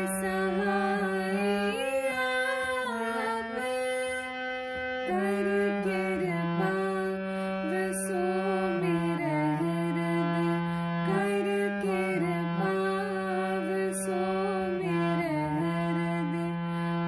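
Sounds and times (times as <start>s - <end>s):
harmonium playing slow melody: 0.0s - 17.0s.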